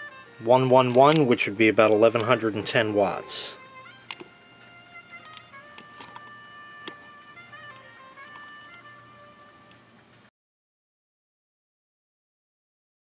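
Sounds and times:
faint slow melody: 0.0 - 10.3.

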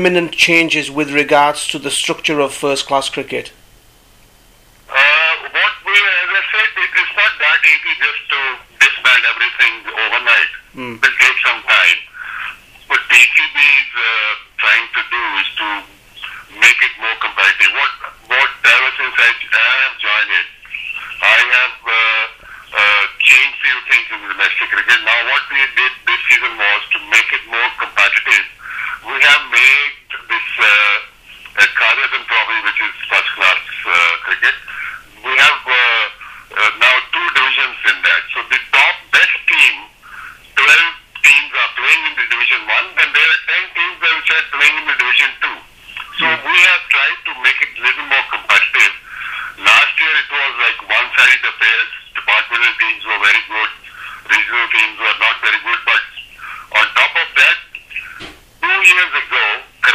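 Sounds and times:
man talking on phone-like voice: 0.0 - 3.6, 4.9 - 59.9.

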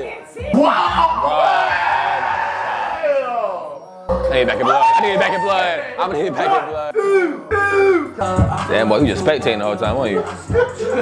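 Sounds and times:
young men shouting: 0.5 - 3.7, 4.5 - 8.3.

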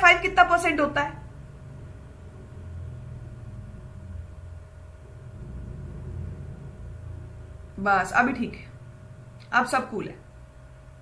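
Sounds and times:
uneven background rumble: 0.0 - 9.5
faint steady hum: 0.0 - 11.0.

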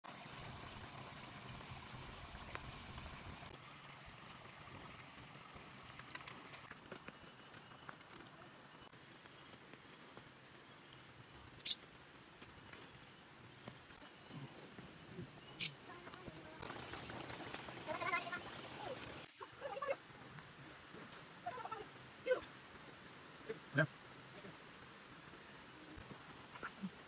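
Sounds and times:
high-pitched insect drone: 8.9 - 14.5, 18.0 - 27.0.

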